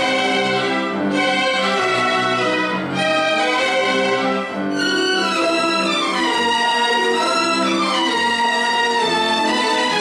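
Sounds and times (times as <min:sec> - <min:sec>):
string ensemble playing: 0:00.0 - 0:10.0.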